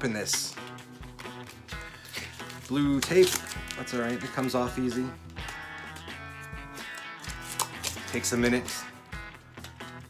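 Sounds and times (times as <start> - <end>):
background music with held notes: 0.0 - 10.0
tape peeling off: 6.8 - 8.1.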